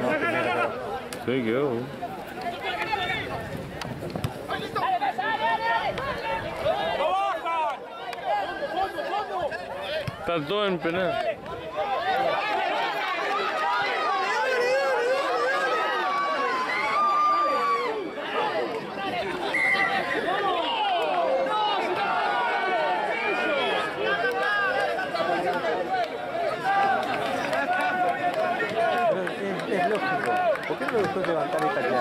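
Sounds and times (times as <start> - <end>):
spectators chattering: 0.0 - 32.0.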